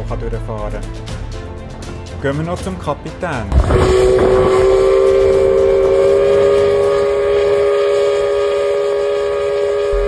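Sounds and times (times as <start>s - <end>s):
steam whistle blast: 3.5s - 10.0s.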